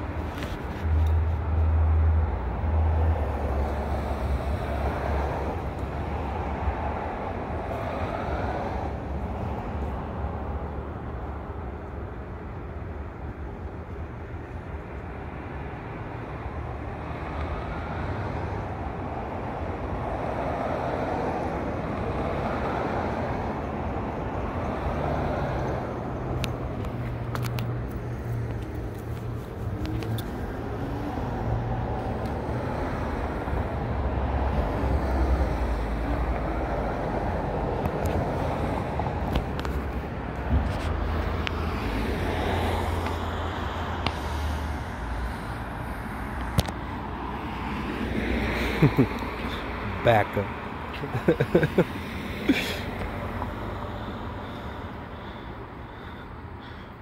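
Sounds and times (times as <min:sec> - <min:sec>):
street traffic rumble: 0:00.0 - 0:57.0.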